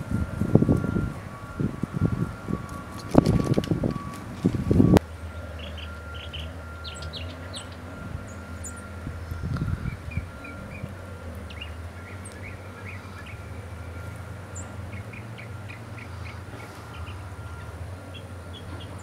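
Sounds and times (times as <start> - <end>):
steady low hum: 0.0 - 19.0
wind buffeting microphone: 0.0 - 19.0
songbirds chirping: 0.2 - 19.0.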